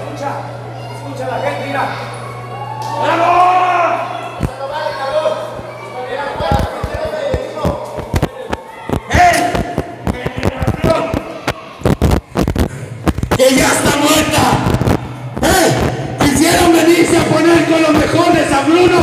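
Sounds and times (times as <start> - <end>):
men shouting: 1.8 - 7.4.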